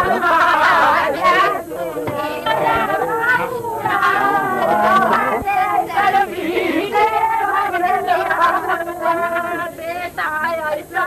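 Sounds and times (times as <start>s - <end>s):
high voice singing: 0.0s - 9.7s.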